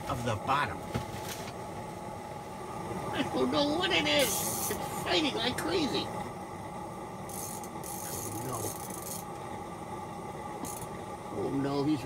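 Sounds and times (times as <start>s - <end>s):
lantern hissing: 4.1s - 5.1s.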